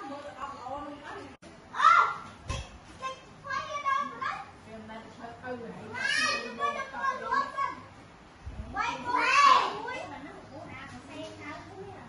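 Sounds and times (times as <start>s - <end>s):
children calling and chattering: 0.0s - 4.7s, 5.4s - 12.0s.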